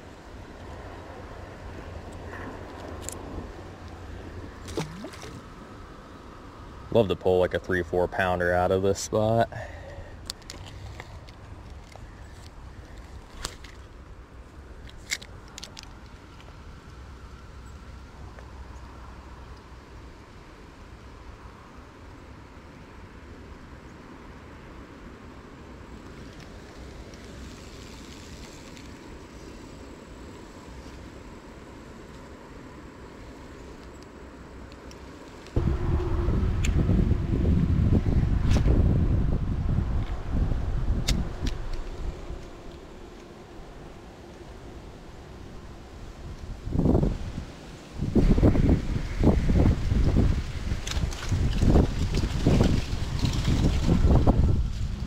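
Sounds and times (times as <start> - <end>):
wind buffeting microphone: 35.6 - 43.0, 46.3 - 55.0.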